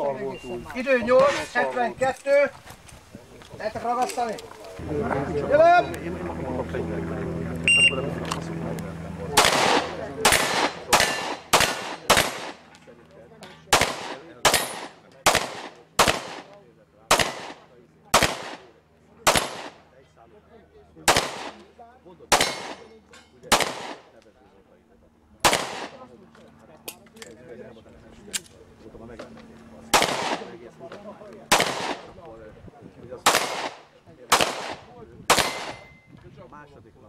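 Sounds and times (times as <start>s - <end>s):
shot timer beep: 7.7s - 8.0s
pistol shots: 9.4s - 12.6s, 13.7s - 16.5s, 17.1s - 19.8s, 21.1s - 21.6s, 22.3s - 22.9s, 23.5s - 24.1s, 25.4s - 26.0s, 29.9s - 30.6s, 31.5s - 32.1s, 33.2s - 35.9s.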